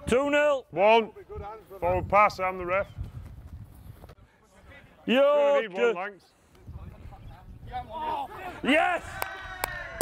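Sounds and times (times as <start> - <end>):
feet running on grass: 2.5 - 4.3.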